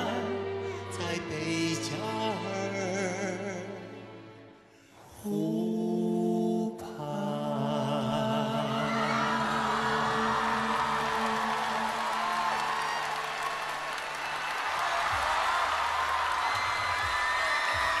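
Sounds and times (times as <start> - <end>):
audience cheering and applause: 8.7 - 18.0.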